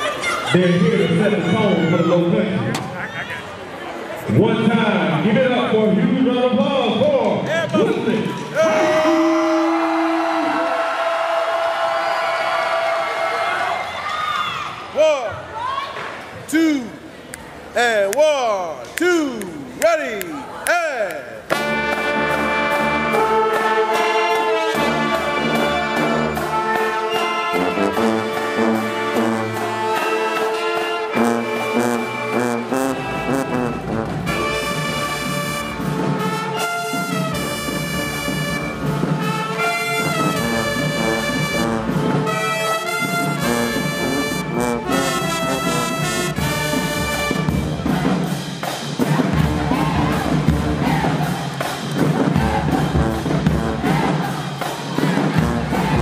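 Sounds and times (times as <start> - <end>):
marching band playing brass tune: 21.4 - 56.0.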